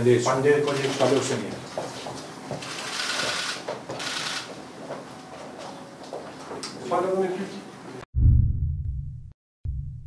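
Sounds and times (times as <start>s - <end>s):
camera shutters clicking rapidly: 0.7s - 1.4s, 2.6s - 4.5s.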